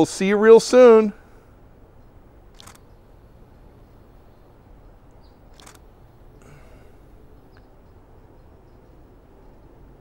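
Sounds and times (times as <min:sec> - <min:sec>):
faint steady background noise: 0:00.0 - 0:10.0
camera shutter clicking: 0:02.5 - 0:02.8, 0:05.5 - 0:05.8.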